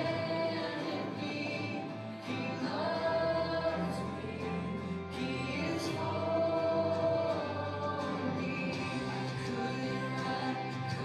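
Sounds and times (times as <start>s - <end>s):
choir and congregation singing: 0.0s - 11.0s
musical accompaniment: 0.0s - 11.0s.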